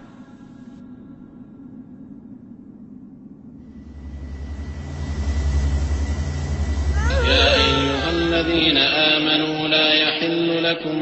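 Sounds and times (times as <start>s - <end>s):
loud low droning hum: 0.0s - 11.0s.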